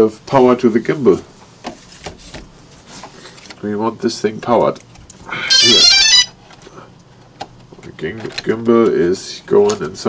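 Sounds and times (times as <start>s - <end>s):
drone high multi-tone beep: 5.5s - 6.3s.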